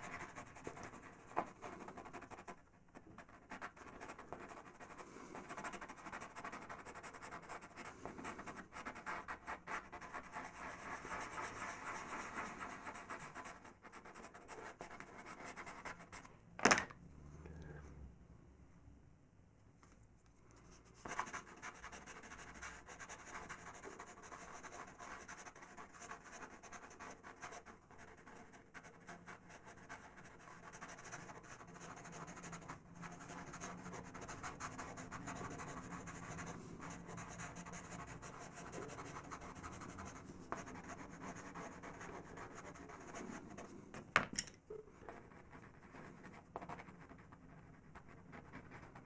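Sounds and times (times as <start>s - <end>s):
pastel pencil scratching paper: 0.0s - 16.3s, 20.6s - 44.1s, 45.0s - 49.0s.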